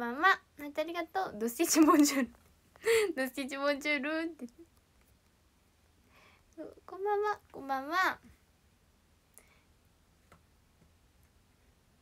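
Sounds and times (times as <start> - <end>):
person speaking: 0.0 - 4.6.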